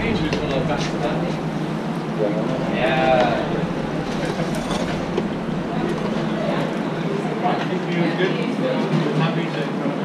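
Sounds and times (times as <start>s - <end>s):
busy kitchen din: 0.0s - 10.0s.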